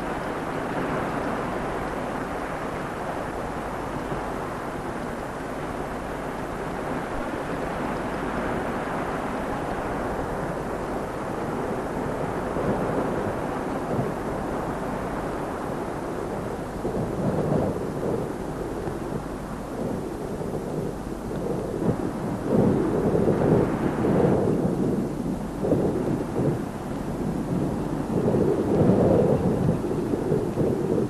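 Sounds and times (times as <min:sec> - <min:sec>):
low rumbling noise: 0:00.0 - 0:31.0.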